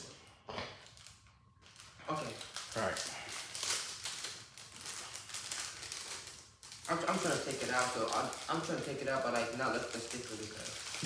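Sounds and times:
plastic bag crinkling: 0.8 - 11.0.

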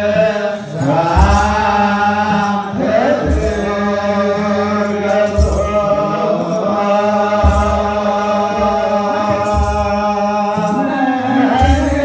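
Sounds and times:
men chanting in unison: 0.0 - 12.0
hand drum strikes: 0.8 - 6.6, 7.3 - 12.0.

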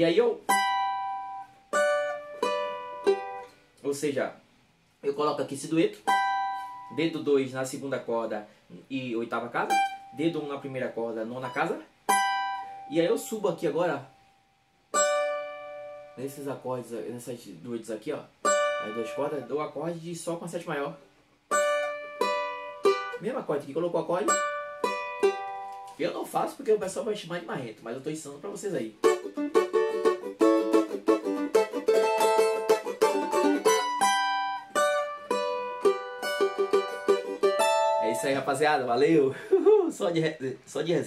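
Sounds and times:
cavaquinho chords strummed: 0.0 - 3.6, 5.5 - 7.2, 9.4 - 14.3, 14.9 - 16.6, 18.3 - 19.8, 21.5 - 27.0, 28.5 - 40.0.

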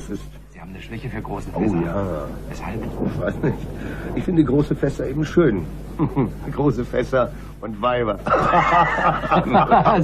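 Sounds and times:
men laughing: 2.7 - 4.2, 5.9 - 6.4, 8.2 - 10.0.

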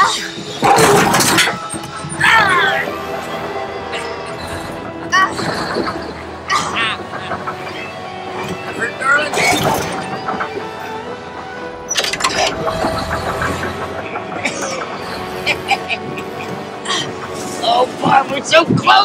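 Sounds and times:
voices calling out: 0.0 - 18.6
film music: 0.0 - 19.0.

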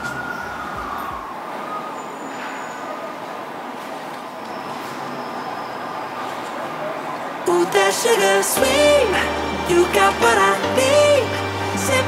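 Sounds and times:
emergency siren wailing: 0.0 - 3.6
street traffic noise: 0.0 - 12.0.

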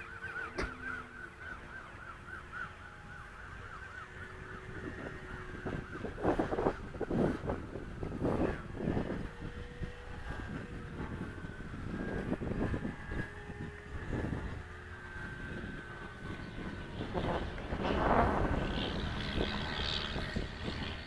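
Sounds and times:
model airplane motor whining: 0.0 - 21.0
wind buffeting microphone: 0.0 - 21.0.

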